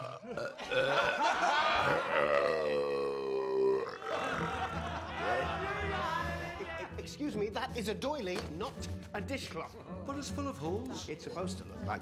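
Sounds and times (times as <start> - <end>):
man belching loudly: 0.0 - 4.8
men shouting and cheering: 3.7 - 7.1.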